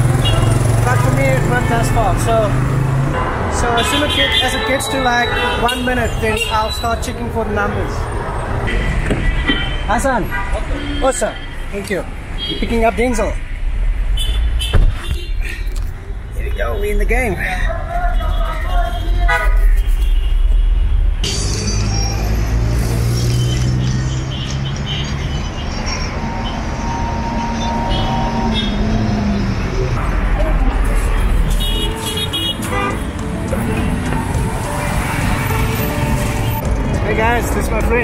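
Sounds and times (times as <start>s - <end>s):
car horns honking: 0.0s - 15.4s, 18.0s - 37.5s
traffic engines and tyre rumble: 0.0s - 38.0s.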